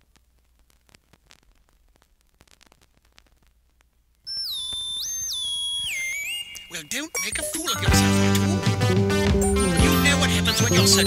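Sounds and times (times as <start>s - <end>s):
vinyl record crackle: 0.0s - 11.0s.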